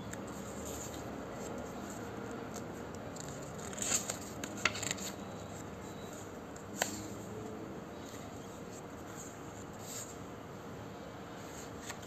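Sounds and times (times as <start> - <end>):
room noise: 0.0 - 12.0
paper pages turning: 0.1 - 7.1, 11.4 - 12.0.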